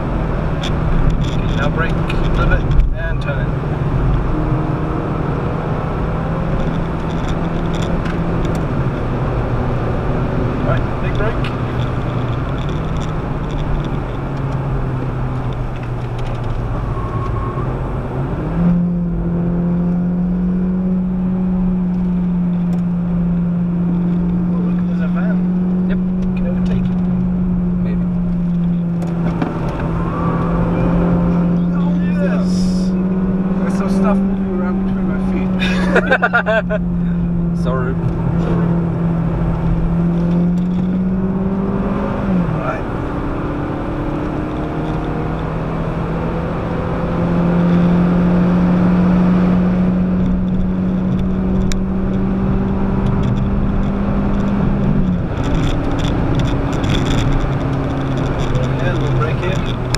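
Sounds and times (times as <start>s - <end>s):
car engine from inside cabin: 0.0s - 59.9s
road and wind noise: 0.0s - 59.9s.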